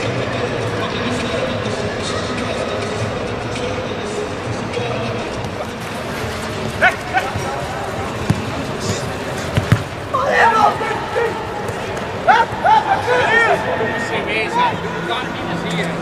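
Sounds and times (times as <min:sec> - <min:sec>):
background music: 0:00.0 - 0:16.0
chatter: 0:00.0 - 0:16.0
players shouting: 0:05.6 - 0:16.0
football kicks: 0:06.8 - 0:10.3.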